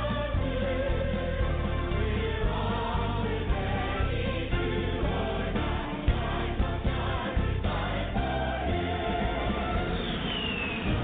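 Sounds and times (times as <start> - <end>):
choir singing with band: 0.0 - 11.0.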